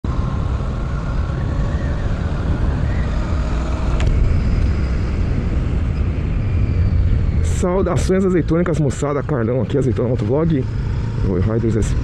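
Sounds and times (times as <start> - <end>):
wind and road noise: 0.0 - 12.0.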